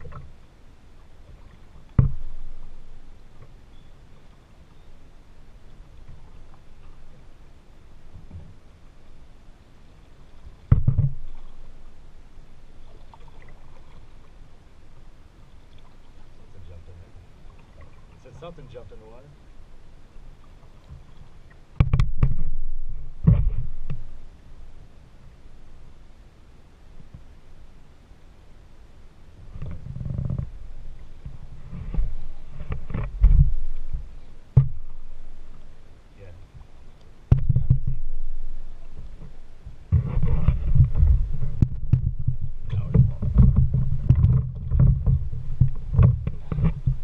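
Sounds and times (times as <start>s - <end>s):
rumble: 0.0s - 15.5s, 20.8s - 47.0s
quiet water noise: 0.0s - 47.0s
kayak hull thumps and knocks: 1.3s - 2.7s, 10.6s - 11.6s, 21.8s - 24.1s, 31.2s - 35.1s, 37.3s - 38.4s, 39.2s - 47.0s
loud thump: 37.3s - 38.0s.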